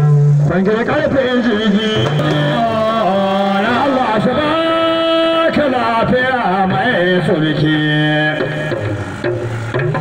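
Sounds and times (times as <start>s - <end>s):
man singing long notes: 0.0s - 8.8s
sharp knocks: 2.0s - 2.7s, 8.4s - 10.0s.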